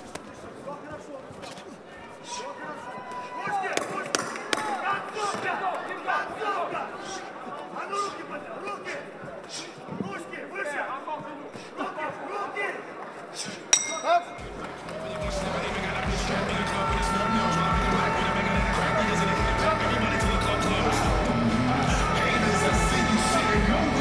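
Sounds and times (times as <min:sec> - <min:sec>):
crowd voices: 0:00.0 - 0:24.0
bell strike: 0:13.8 - 0:14.5
music with steady beat: 0:14.4 - 0:24.0.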